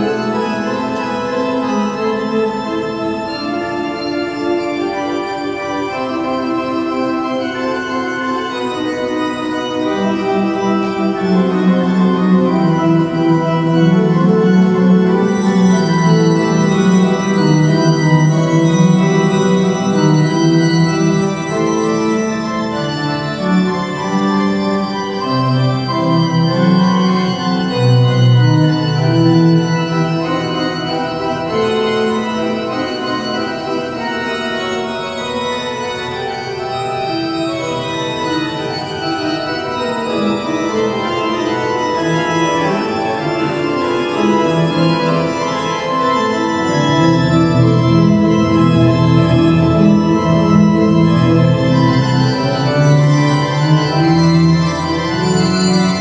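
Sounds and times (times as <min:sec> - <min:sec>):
organ playing slow chords: 0:00.0 - 0:56.0.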